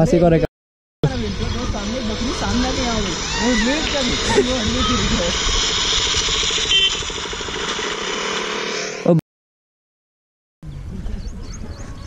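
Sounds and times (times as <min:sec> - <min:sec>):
motorcycle engine idling: 0:01.0 - 0:08.7.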